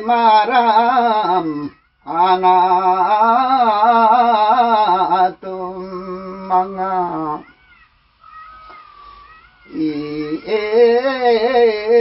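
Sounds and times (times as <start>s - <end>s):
elderly man singing: 0.0s - 7.4s, 9.7s - 12.0s
faint high gliding cries: 6.4s - 11.8s.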